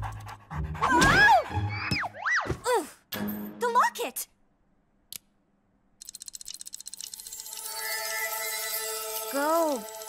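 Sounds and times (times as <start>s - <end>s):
fast clockwork ticking: 6.0s - 10.0s.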